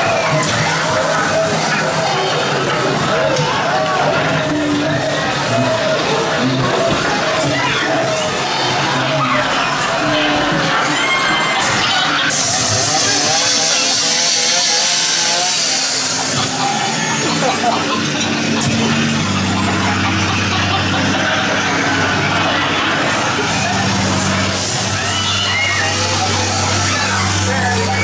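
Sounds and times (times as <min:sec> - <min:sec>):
people yelling: 0:00.0 - 0:28.0
chainsaw running: 0:12.3 - 0:28.0
steady low drone: 0:12.3 - 0:28.0.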